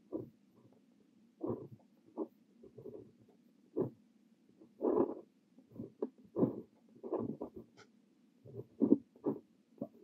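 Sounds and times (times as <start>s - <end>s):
fountain pen scratching on paper: 1.4s - 4.0s, 4.8s - 7.9s, 8.5s - 10.0s.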